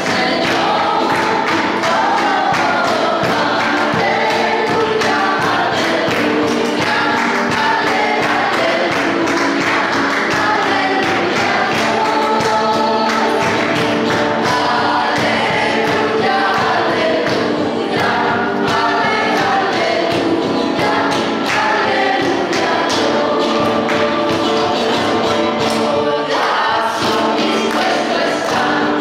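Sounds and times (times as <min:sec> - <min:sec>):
group singing worship song: 0:00.0 - 0:29.0
instrumental accompaniment with beat: 0:00.0 - 0:29.0.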